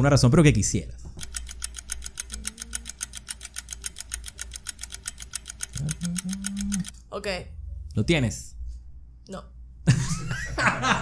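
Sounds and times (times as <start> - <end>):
rapid even clicking: 1.2 - 7.0.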